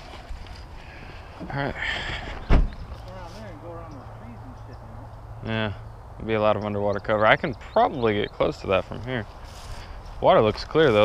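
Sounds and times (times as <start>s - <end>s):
car trunk slamming shut: 2.4s - 2.8s.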